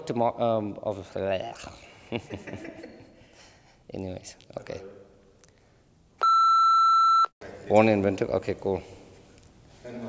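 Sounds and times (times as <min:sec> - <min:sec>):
steady high test tone beep: 0:06.2 - 0:07.3.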